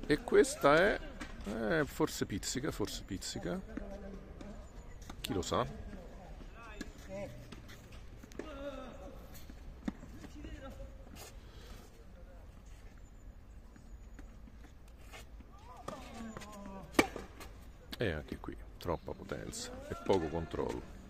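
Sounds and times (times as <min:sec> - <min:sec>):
tennis ball hitting racket: 0:16.8 - 0:17.5.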